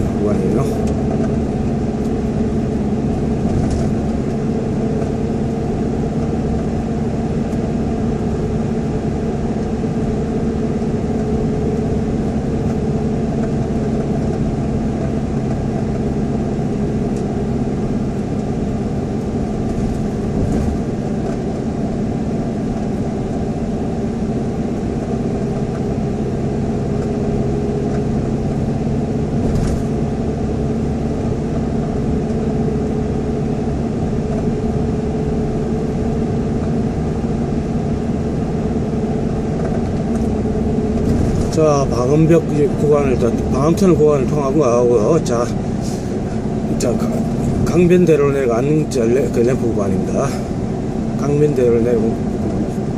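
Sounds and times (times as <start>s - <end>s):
car cabin road and engine hum: 0.0s - 52.9s.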